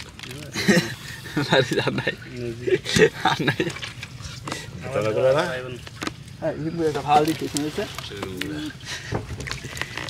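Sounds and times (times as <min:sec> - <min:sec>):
hands rustling wet weeds: 0:00.0 - 0:10.0.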